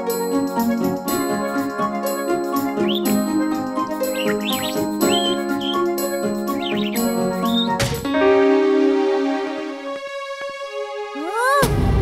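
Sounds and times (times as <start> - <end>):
cartoon background music: 0.0 - 12.0
chirping whistles: 2.6 - 7.8.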